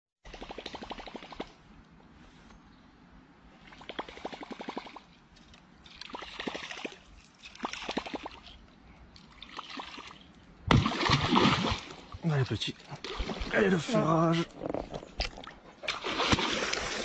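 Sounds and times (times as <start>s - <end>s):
fish splashing in water: 5.9s - 8.6s, 9.2s - 12.2s, 13.0s - 13.8s, 15.2s - 17.0s.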